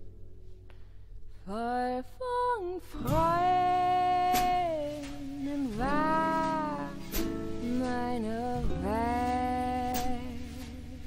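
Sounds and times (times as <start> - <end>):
woman singing wordless line: 1.5 - 11.0.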